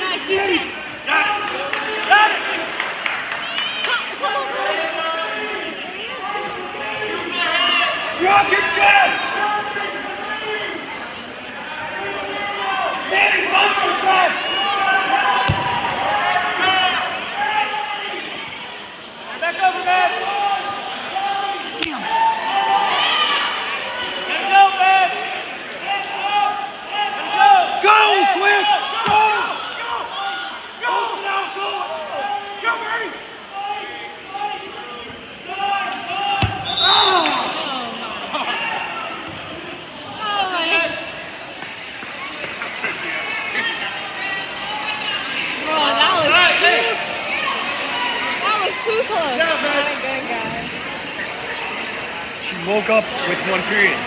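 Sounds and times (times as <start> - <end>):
people shouting: 19.8 - 39.2.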